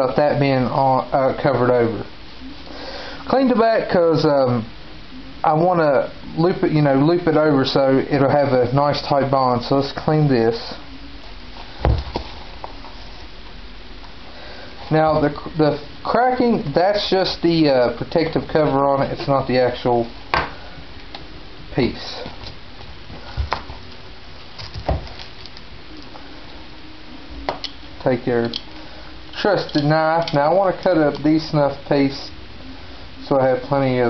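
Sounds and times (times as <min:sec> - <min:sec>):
film crinkling and crackling: 0:11.0 - 0:26.8.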